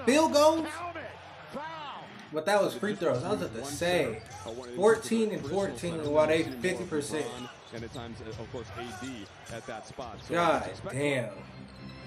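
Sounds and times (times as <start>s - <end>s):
man talking: 2.4s - 8.0s, 10.3s - 11.4s.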